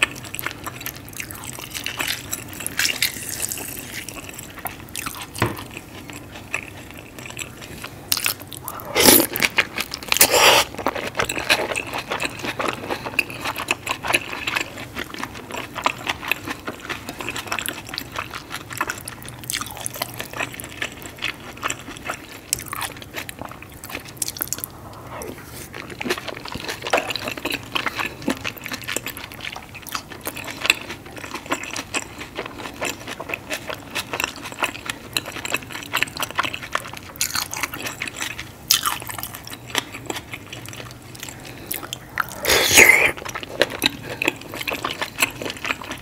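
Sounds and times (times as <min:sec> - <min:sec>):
close chewing and wet mouth sounds: 0:00.0 - 0:46.0.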